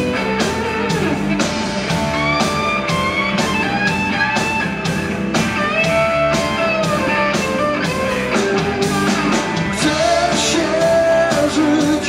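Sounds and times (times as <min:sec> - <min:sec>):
electric guitar solo: 0:00.0 - 0:09.8
bass: 0:00.0 - 0:12.0
steady drum beat: 0:00.0 - 0:12.0.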